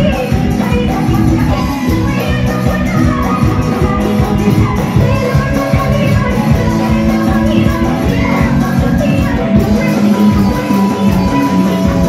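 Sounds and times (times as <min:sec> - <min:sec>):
driving drum beat: 0:00.0 - 0:12.0
electric guitar: 0:00.0 - 0:12.0
woman singing: 0:00.0 - 0:12.0.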